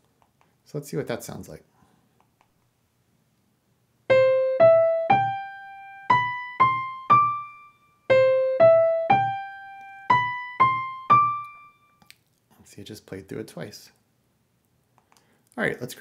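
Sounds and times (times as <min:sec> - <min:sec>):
sampled piano riff: 0:04.1 - 0:12.0.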